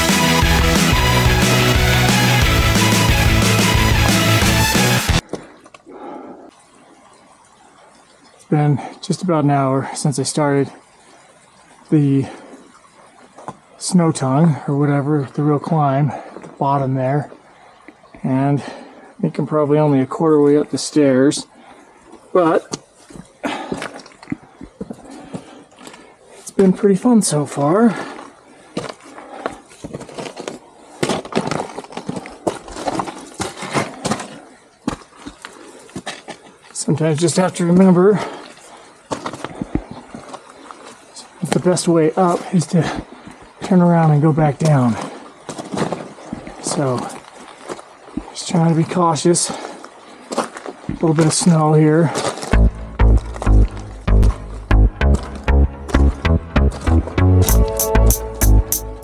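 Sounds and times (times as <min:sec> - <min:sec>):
background music: 0:00.0 - 0:05.2, 0:52.6 - 0:59.0
hands and boots scraping on rock: 0:28.8 - 0:36.6.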